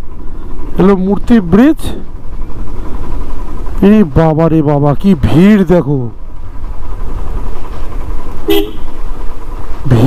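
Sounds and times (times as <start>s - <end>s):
motorcycle engine rumbling: 0.0s - 10.0s
vehicle horn toot: 8.4s - 9.0s.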